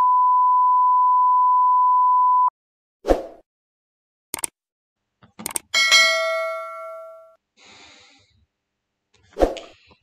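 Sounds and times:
notification bell ding: 5.8 - 7.4.

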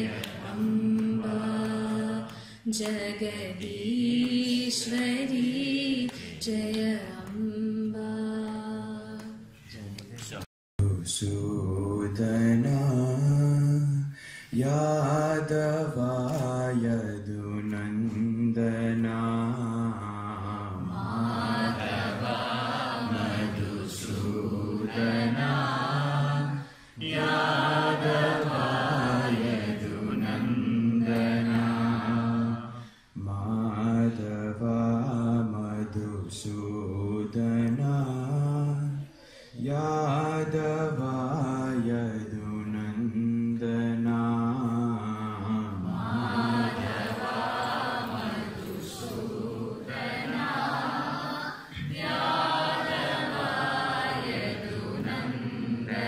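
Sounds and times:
group chanting over a microphone: 0.0 - 2.4, 18.7 - 35.4, 44.6 - 56.0.

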